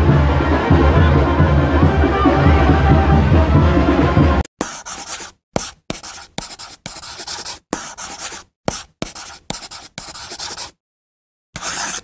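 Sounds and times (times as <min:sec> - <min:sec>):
chalk scratching on a chalkboard: 0:04.6 - 0:10.8, 0:11.6 - 0:12.0.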